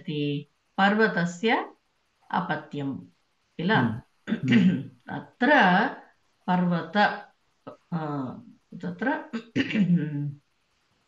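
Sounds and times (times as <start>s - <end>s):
person speaking: 3.6s - 5.9s.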